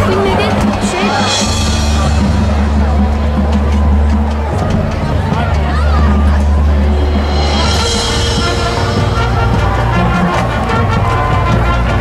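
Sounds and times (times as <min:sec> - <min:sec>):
drum and percussion strikes: 0:00.0 - 0:12.0
sustained brass chords: 0:00.0 - 0:12.0.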